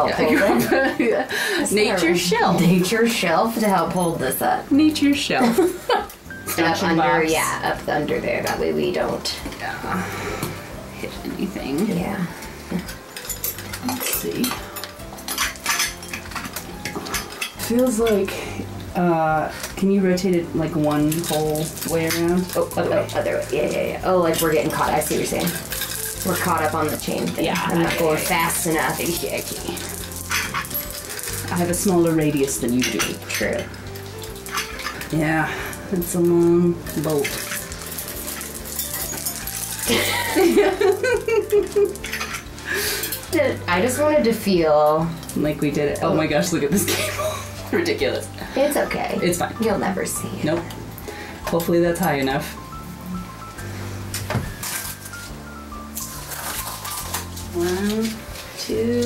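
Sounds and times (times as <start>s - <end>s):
crystal drops clinking: 24.3s - 35.2s, 36.9s - 43.4s.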